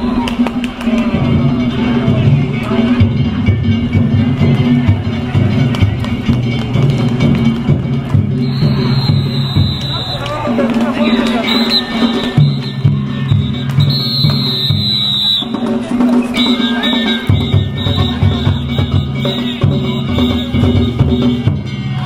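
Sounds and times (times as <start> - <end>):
drums gongs and flute music: 0.0 - 22.0
crowd chanting: 8.4 - 22.0
high held tone: 8.4 - 22.0.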